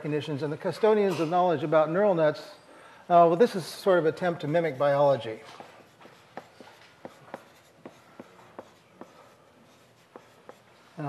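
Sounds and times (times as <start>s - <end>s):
chalk tapping on blackboard: 4.2s - 10.7s.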